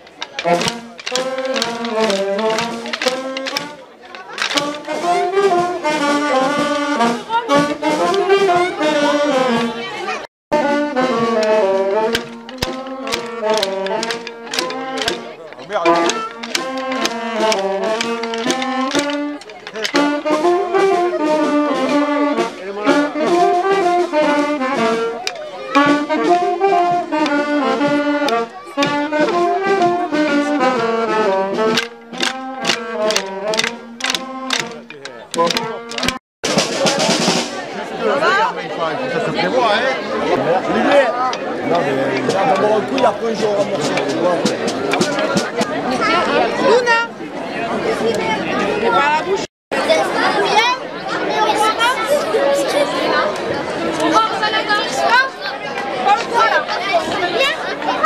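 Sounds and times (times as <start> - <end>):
crowd voices and chatter: 0.0 - 58.0
street band playing dance tune: 0.0 - 58.0.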